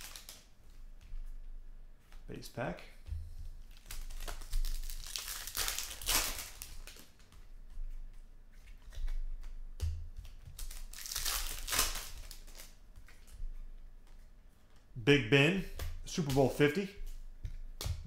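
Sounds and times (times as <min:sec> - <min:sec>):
foil wrappers crinkling and tearing: 0:00.0 - 0:00.5, 0:03.7 - 0:07.3, 0:10.5 - 0:13.3.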